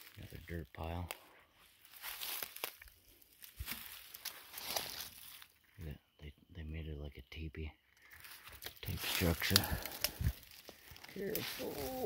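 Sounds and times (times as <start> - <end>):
footsteps crunching dry leaves: 0.0 - 5.6, 8.0 - 12.0
twigs snapping: 1.9 - 5.5, 8.0 - 12.0.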